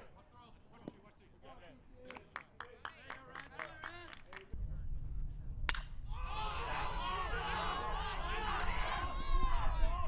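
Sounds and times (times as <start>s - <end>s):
baseball bat cracking ball: 5.6s - 6.0s
spectators shouting and cheering: 6.1s - 10.0s.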